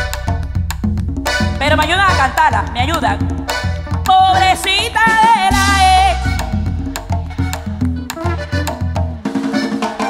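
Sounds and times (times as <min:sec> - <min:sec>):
bass line: 0:00.0 - 0:09.4
drums playing a groove: 0:00.0 - 0:10.0.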